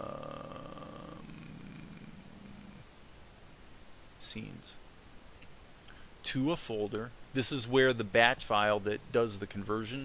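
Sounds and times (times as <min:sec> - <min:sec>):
man humming ummm: 0:00.0 - 0:02.9.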